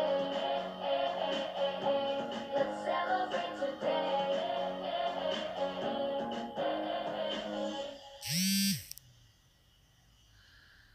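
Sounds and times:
music: 0:00.0 - 0:08.2
short electric buzz: 0:08.2 - 0:09.0.

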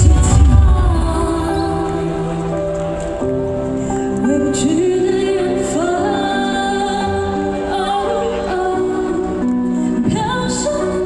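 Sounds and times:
woman singing into a microphone: 0:00.0 - 0:03.0, 0:04.1 - 0:11.0.

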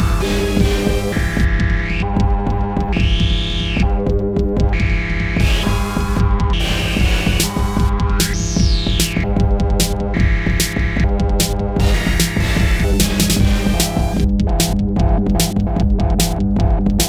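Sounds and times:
high synth sweep: 0:00.0 - 0:14.7
electronic synthesizer music: 0:00.0 - 0:17.0.

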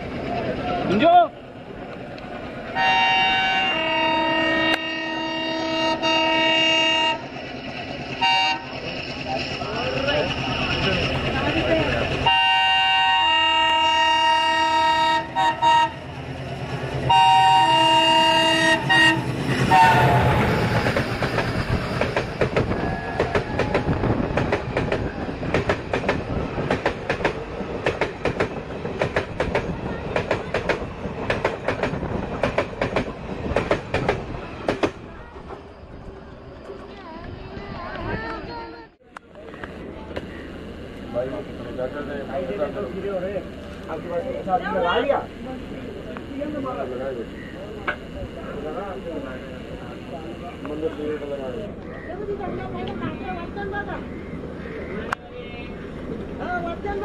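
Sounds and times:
locomotive horn blasts: 0:02.8 - 0:07.3, 0:08.2 - 0:08.7, 0:12.2 - 0:16.0, 0:17.1 - 0:20.3
train wheels clickety-clack: 0:18.7 - 0:35.6.

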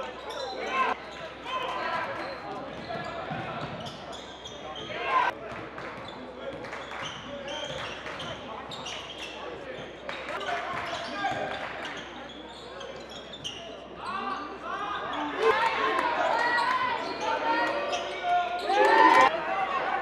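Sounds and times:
indistinct echoing shouts: 0:14.6 - 0:20.0.

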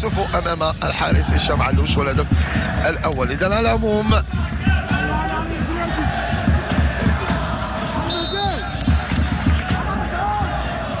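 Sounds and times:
drums beating: 0:00.0 - 0:11.0
crowd chanting: 0:03.7 - 0:11.0.

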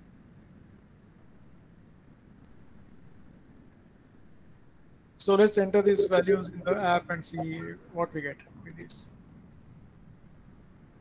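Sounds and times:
microphone hum and hiss: 0:05.2 - 0:11.0.

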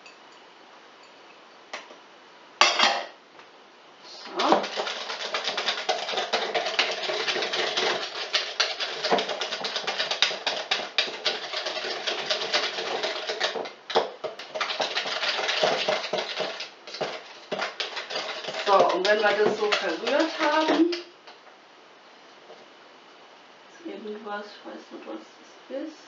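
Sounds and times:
hand whisk clicking and scraping: 0:04.3 - 0:21.1.

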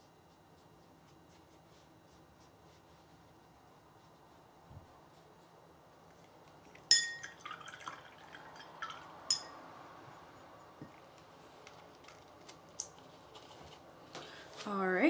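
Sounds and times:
brush clinking against glass: 0:06.8 - 0:09.6.

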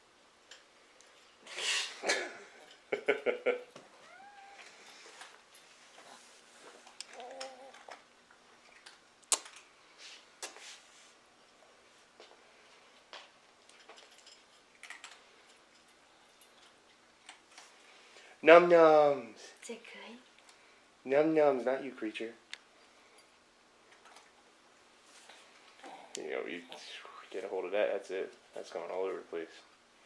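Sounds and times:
cat meowing: 0:04.0 - 0:04.8.

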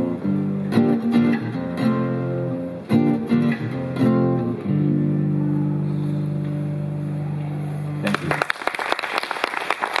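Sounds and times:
audience applause: 0:08.0 - 0:10.0.

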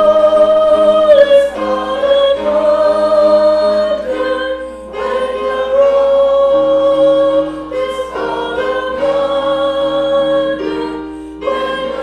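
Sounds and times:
congregation singing a hymn: 0:00.0 - 0:12.0
piano accompaniment: 0:00.0 - 0:12.0.

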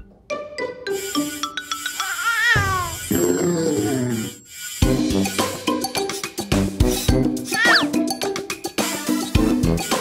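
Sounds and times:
wavering cartoon vocal call: 0:02.0 - 0:03.2, 0:07.5 - 0:07.9.

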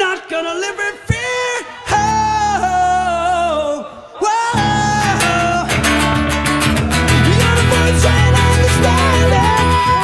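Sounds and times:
man singing: 0:00.0 - 0:10.0
acoustic guitar strumming: 0:04.5 - 0:10.0
electric bass: 0:04.6 - 0:10.0.

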